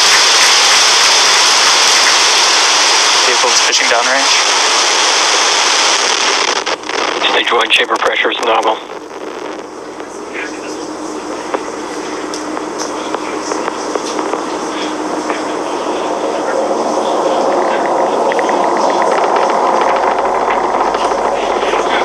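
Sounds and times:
distant rocket engine roar: 0.0 - 22.0
sharp crackling: 0.0 - 22.0.

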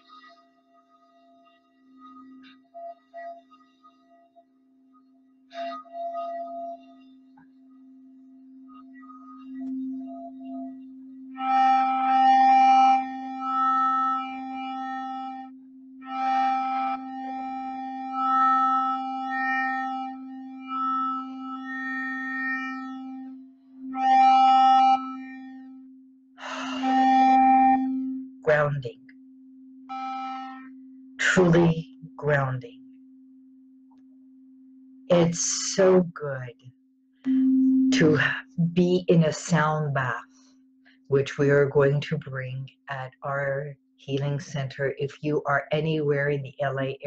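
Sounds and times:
singing bowl tone: 0.0 - 36.6, 37.2 - 41.2
woman toning sustained vowels: 26.4 - 29.0.

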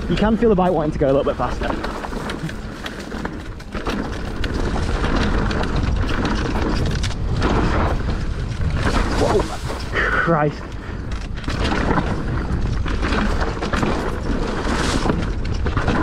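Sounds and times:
bike knocks and rattles: 0.0 - 16.0
tyres crunching over dirt: 0.0 - 16.0
wind buffeting microphone: 0.0 - 16.0
grass brushing against bike: 0.1 - 10.8, 11.4 - 16.0.

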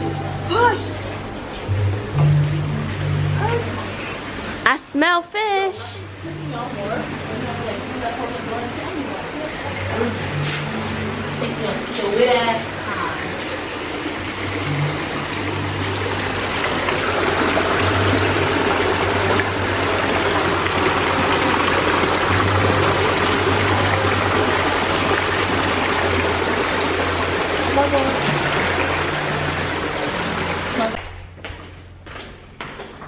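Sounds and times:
small waterfall splashing over rocks: 11.5 - 31.0.

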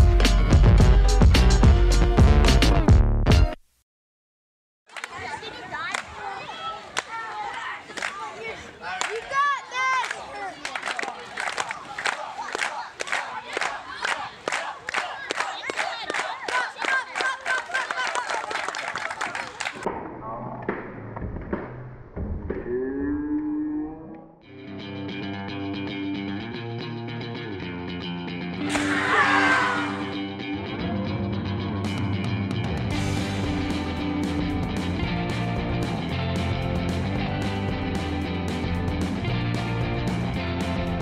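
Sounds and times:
voices: 4.9 - 20.4, 28.6 - 30.2
crowd clapping in rhythm: 7.0 - 8.3, 8.9 - 19.9
background music with guitar: 24.5 - 28.8, 29.5 - 41.0.

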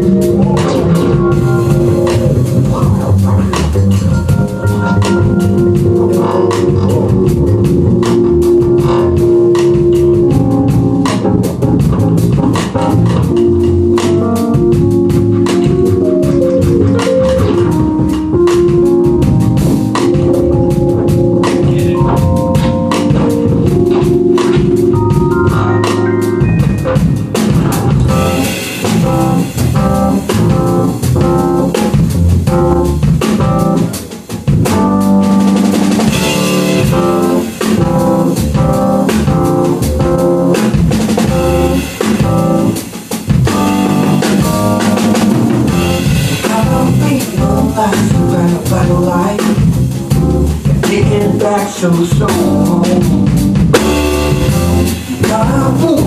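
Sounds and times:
drum kit with cymbals: 0.0 - 56.0
sustained keyboard notes: 0.0 - 56.0
walking double bass: 0.0 - 56.0.

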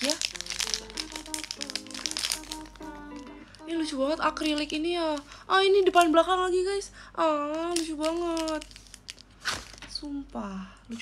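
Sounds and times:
background music melody: 0.0 - 5.2
plastic wrapping crinkling: 0.0 - 6.4, 7.5 - 10.4.

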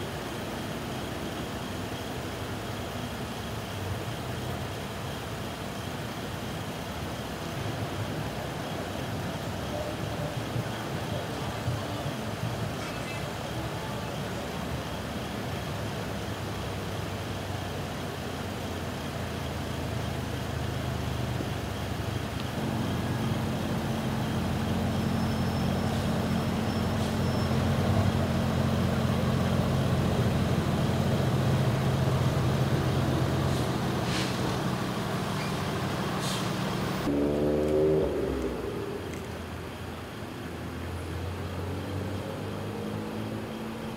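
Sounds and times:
low engine drone: 0.0 - 43.9
vehicle engine idling: 0.0 - 43.9.

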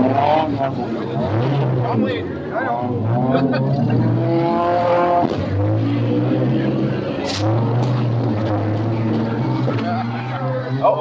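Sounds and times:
race car engine running hard: 0.0 - 11.0.

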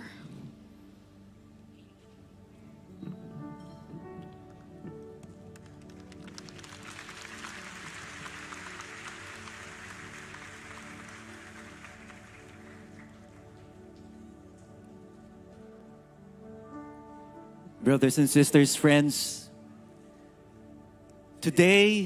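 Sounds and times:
soft background music: 0.0 - 22.0
audience applause: 4.5 - 14.1.

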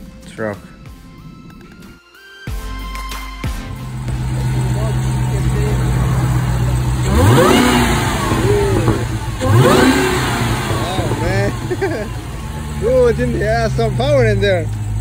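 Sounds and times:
car engine idling: 0.0 - 15.0
car engine revving hard: 3.7 - 15.0
voices: 3.8 - 15.0.

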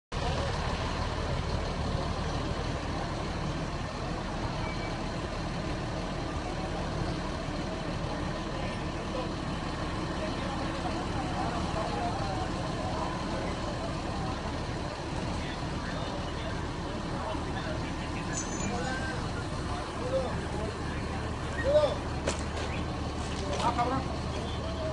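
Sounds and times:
faint indistinct voices: 0.1 - 24.9
low rumble of traffic: 0.1 - 24.9.

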